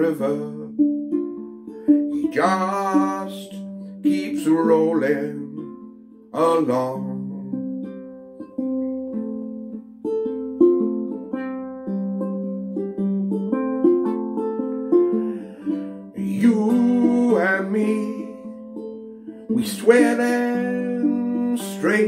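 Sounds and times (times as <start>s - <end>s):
ukulele picked melody: 0.0s - 22.0s.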